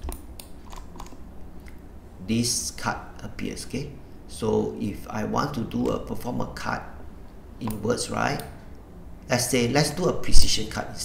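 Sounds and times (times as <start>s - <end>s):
keyboard and mouse clicks: 0.0s - 1.8s
low steady hum: 0.0s - 11.0s.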